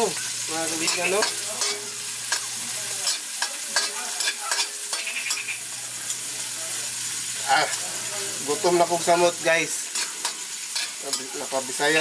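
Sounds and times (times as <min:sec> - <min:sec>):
garlic and onion sizzling in oil: 0:00.0 - 0:12.0
metal spatula scraping wok: 0:00.6 - 0:05.6, 0:09.7 - 0:11.6.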